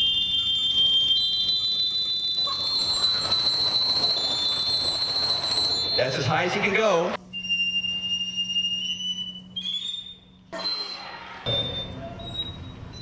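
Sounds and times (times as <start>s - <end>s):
glockenspiel high ringing notes: 0.0s - 6.6s.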